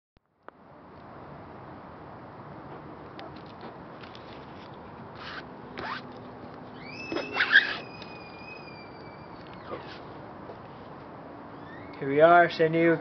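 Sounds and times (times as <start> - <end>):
high whistle-like tone sliding down: 6.8 - 9.8.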